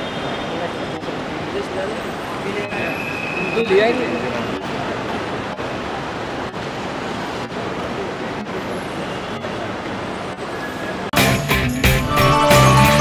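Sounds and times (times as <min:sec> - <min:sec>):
steady traffic noise: 0:00.0 - 0:12.0.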